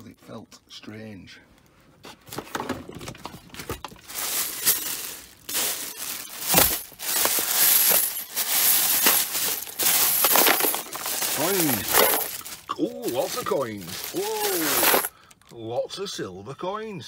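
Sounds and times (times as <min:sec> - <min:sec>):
plastic bag rustling: 0:02.2 - 0:15.1
coins clinking: 0:04.0 - 0:15.2.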